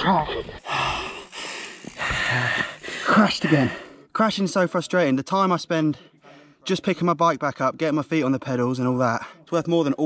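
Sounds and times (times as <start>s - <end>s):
man breathing heavily: 0.5s - 4.1s.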